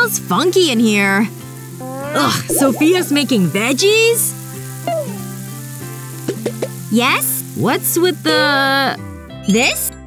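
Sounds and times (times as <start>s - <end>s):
vegetables sizzling in a pan: 0.0s - 9.9s
light background music: 0.0s - 10.0s.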